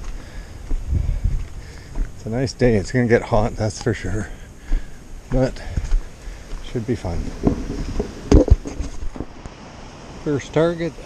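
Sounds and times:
sharp knocks: 0:07.4 - 0:09.3.

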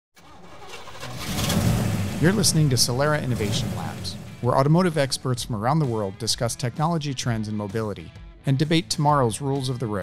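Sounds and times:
engine starting and revving: 0:00.2 - 0:05.0.

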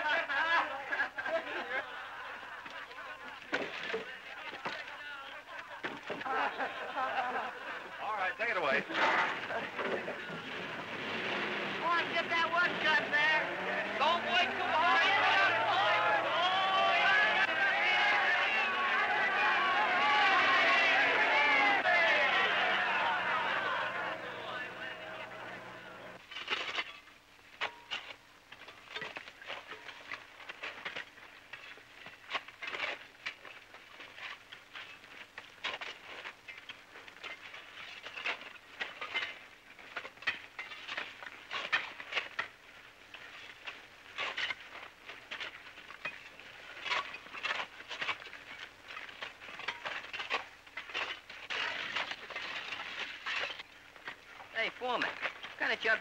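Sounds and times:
shovels digging into earth: 0:11.2 - 0:21.4, 0:26.2 - 0:56.0.

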